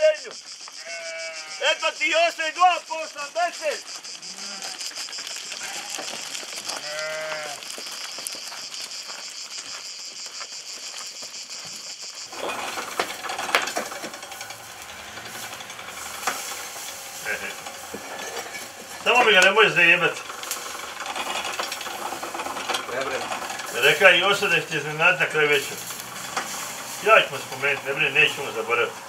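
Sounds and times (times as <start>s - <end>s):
sheep or goat bleat: 0.8s - 2.0s, 4.3s - 4.8s, 5.6s - 7.6s
embers crackling and popping: 1.6s - 29.0s
steady high hiss: 7.9s - 29.0s.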